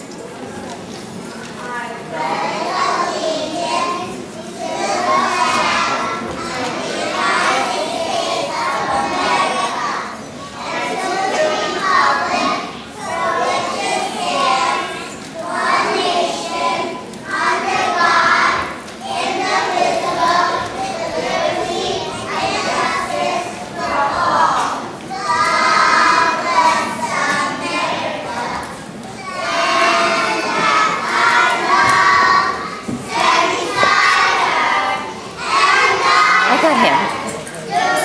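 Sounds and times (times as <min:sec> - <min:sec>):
children's voices in unison: 0:00.0 - 0:38.0.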